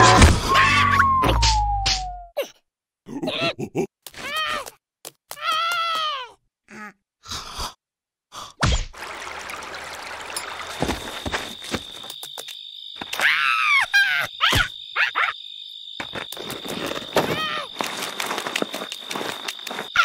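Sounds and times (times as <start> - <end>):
squeaky cartoon creature calls: 0.5 - 1.2, 13.2 - 15.4
insect chirring: 10.3 - 20.0.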